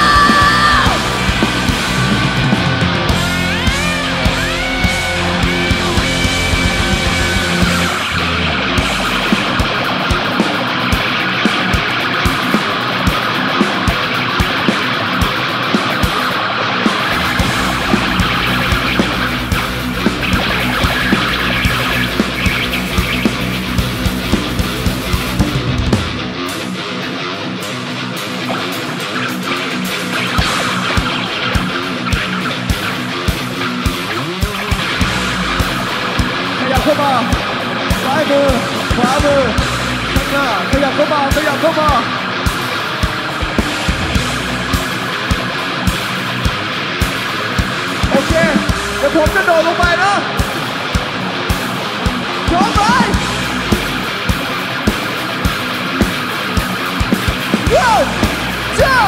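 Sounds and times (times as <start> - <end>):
heavy rock band playing: 0.0 - 59.0.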